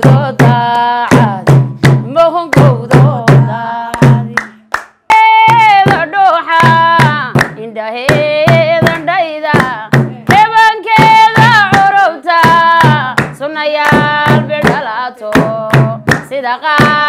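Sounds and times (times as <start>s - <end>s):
hand clapping: 0.0s - 17.0s
women singing: 0.0s - 17.0s.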